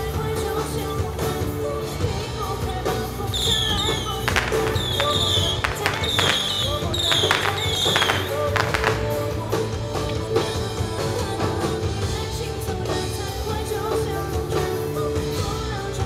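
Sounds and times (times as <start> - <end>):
music playing: 0.0 - 16.0
street crowd: 0.0 - 16.0
high falling chirps: 3.3 - 9.4
firecrackers cracking: 3.3 - 9.7.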